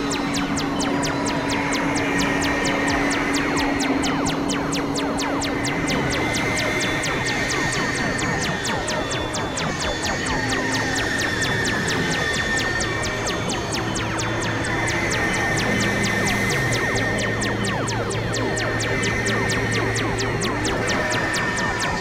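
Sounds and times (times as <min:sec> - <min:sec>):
synthesizer drone: 0:00.0 - 0:22.0
ticking electronic clicks: 0:00.0 - 0:22.0.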